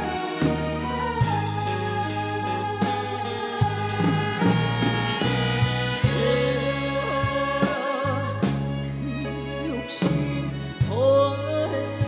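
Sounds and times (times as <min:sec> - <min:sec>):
live band with bass and drums: 0:00.0 - 0:12.0
female backing singers: 0:01.0 - 0:08.4.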